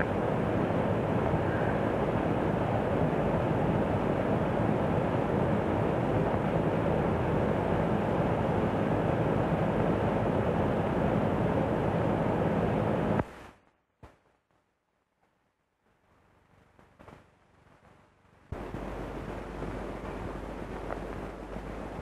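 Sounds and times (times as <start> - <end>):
car running on road: 18.5 - 22.0.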